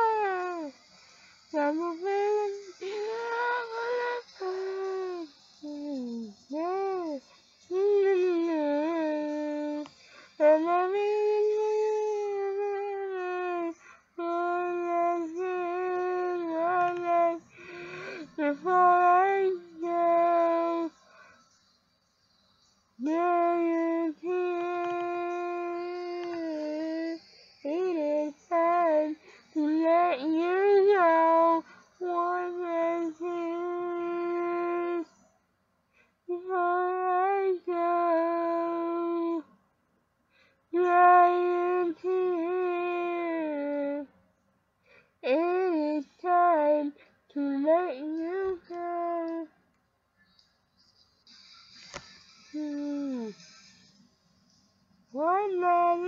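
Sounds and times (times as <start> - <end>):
woman singing unaccompanied: 0.0 - 21.3, 23.0 - 35.2, 36.2 - 39.5, 40.7 - 44.1, 45.2 - 49.6, 51.9 - 53.9, 55.1 - 56.0
breaths between notes: 0.8 - 1.5, 9.9 - 10.4, 17.5 - 18.4, 21.0 - 21.6, 40.3 - 40.7, 44.8 - 45.2.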